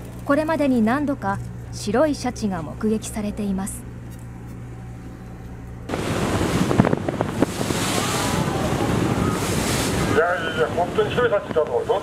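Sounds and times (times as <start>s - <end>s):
low steady hum: 0.0s - 12.0s
sea noise: 5.9s - 12.0s
wind buffeting microphone: 5.9s - 12.0s.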